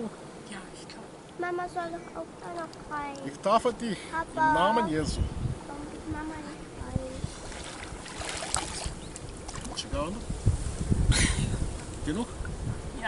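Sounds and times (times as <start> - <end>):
wind rumble on microphone: 4.4 - 13.0
lake water splashing: 7.0 - 10.2.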